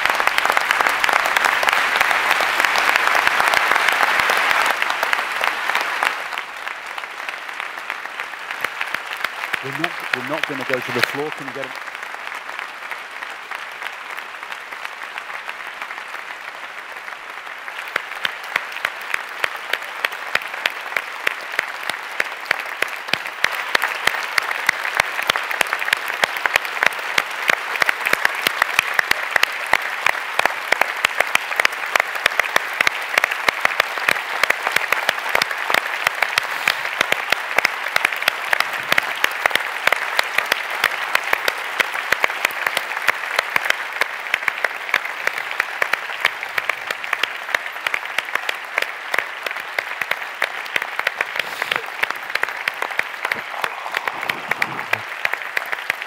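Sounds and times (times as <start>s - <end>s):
large audience applauding: 0.0s - 56.0s.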